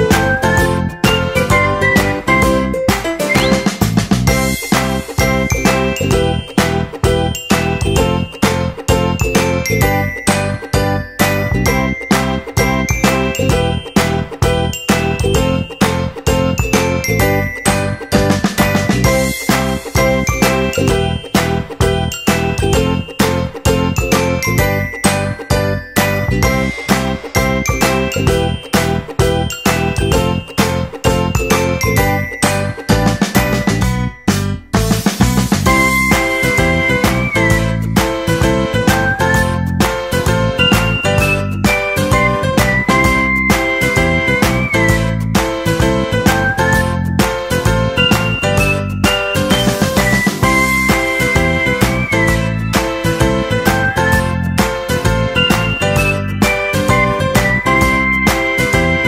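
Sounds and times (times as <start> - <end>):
upbeat background music: 0.0 - 59.0.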